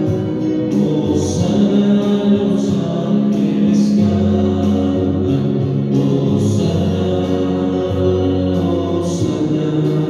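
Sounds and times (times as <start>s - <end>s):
choir singing a hymn: 0.0s - 10.0s.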